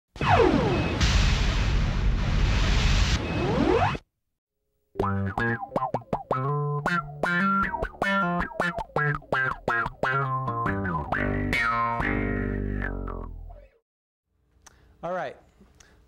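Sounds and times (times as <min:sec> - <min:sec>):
noisy intro sound effect with sweeps: 0:00.2 - 0:04.0
electric bass funk groove: 0:05.0 - 0:13.7.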